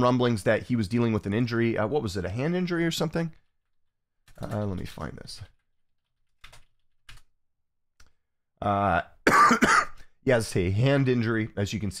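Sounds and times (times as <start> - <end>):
computer keyboard typing: 3.3 - 7.4.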